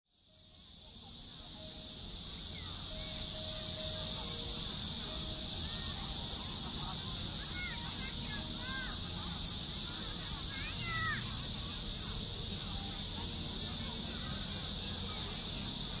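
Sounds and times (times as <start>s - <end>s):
high-pitched hiss: 0.1s - 16.0s.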